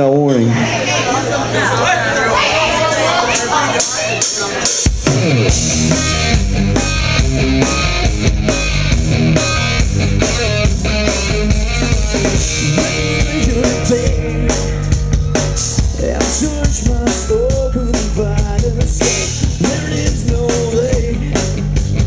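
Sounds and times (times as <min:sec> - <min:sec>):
live rock band playing: 0:02.4 - 0:22.0
drum hits: 0:03.8 - 0:22.0.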